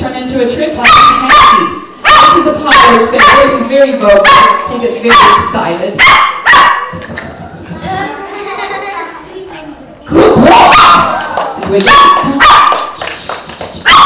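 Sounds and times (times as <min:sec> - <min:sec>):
small dog barking: 0:04.2 - 0:05.4, 0:06.0 - 0:06.9, 0:11.9 - 0:12.8.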